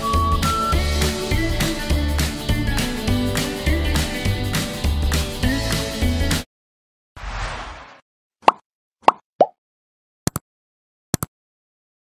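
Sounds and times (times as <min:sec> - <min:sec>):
cartoon pop sound effects: 0:08.4 - 0:09.6.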